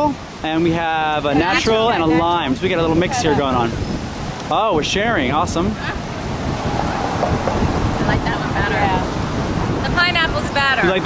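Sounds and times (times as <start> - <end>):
ocean surf: 0.0 - 11.0
wind buffeting microphone: 0.0 - 11.0.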